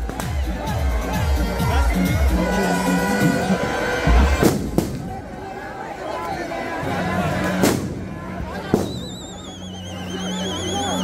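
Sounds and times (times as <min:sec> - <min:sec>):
loud dance music: 0:00.0 - 0:04.6.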